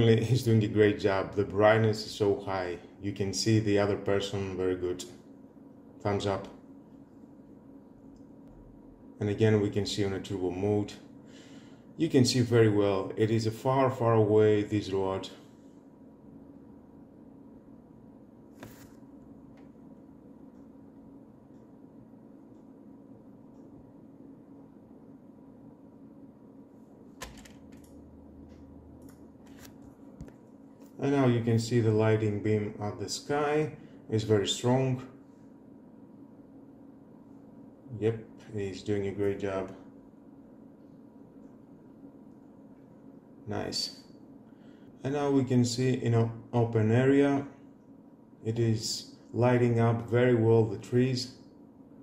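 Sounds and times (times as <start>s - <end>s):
quiet steady hum: 0.0s - 52.0s
steady background hiss: 0.0s - 52.0s.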